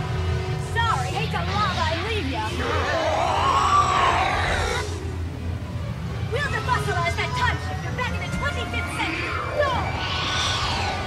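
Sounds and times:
steady low hum: 0:00.0 - 0:08.0.

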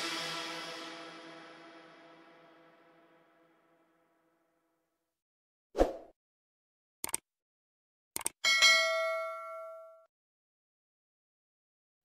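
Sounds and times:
bright bell ding: 0:08.5 - 0:10.1.

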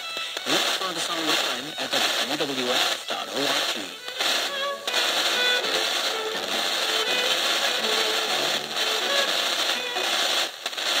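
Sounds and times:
radio music through small speaker: 0:00.0 - 0:11.0
static hiss: 0:00.0 - 0:11.0.

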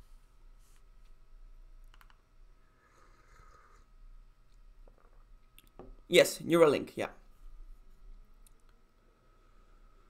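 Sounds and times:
faint steady hum: 0:00.0 - 0:10.0
computer clicks: 0:01.8 - 0:02.2.

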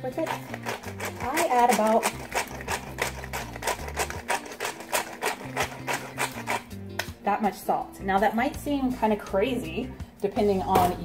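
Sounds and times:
salt grinder grinding: 0:00.0 - 0:06.8.

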